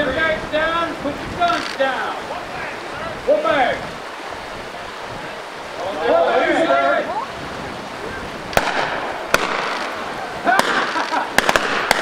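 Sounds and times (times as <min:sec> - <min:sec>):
fast creek rushing: 0:00.0 - 0:12.0
gunshots: 0:08.5 - 0:12.0.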